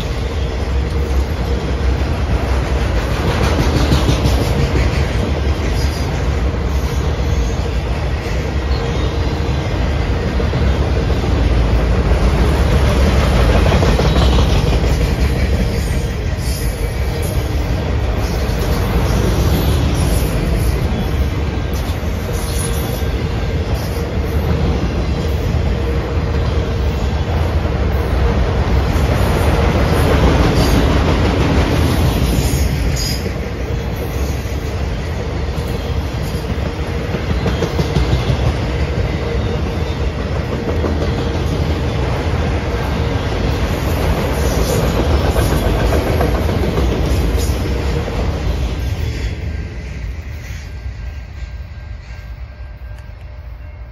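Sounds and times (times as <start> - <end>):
freight train wheels rumbling on rails: 0.0 - 53.9.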